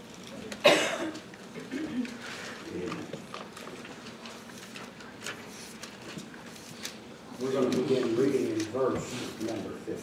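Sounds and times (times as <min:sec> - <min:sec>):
book pages turning: 0:02.7 - 0:09.7.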